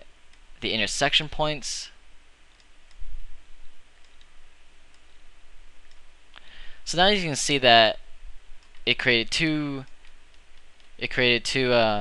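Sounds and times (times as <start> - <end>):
steady low hiss: 0.0 - 12.0
computer mouse clicks: 2.5 - 3.0, 4.0 - 5.1, 8.6 - 8.9, 9.8 - 11.0.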